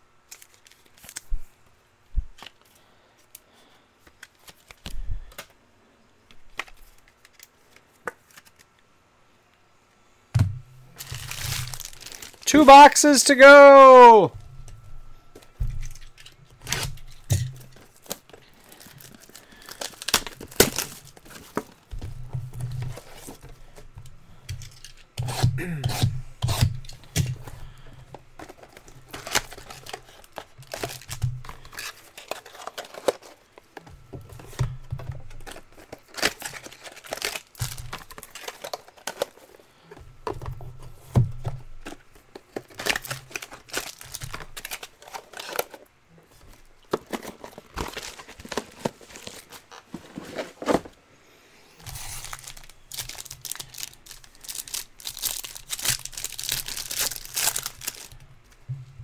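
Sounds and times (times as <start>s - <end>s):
plastic wrapper crinkling and ripping: 0.2s - 1.3s, 10.9s - 12.8s, 15.8s - 21.8s, 28.4s - 33.6s, 35.3s - 39.8s, 41.8s - 50.8s, 51.8s - 58.6s
shrink-wrap tearing: 11.0s - 14.0s, 15.8s - 21.7s, 28.4s - 33.4s, 35.4s - 39.5s, 42.5s - 45.8s, 51.8s - 58.2s.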